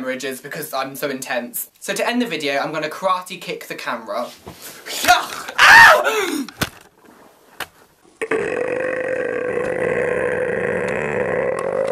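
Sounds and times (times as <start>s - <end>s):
long burp: 8.2s - 11.9s.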